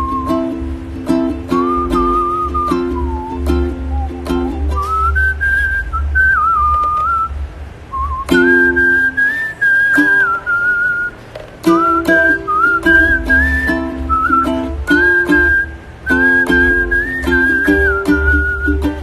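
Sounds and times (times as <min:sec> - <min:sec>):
man whistling a melody: 0:00.0 - 0:19.0
ukulele strumming: 0:00.0 - 0:19.0.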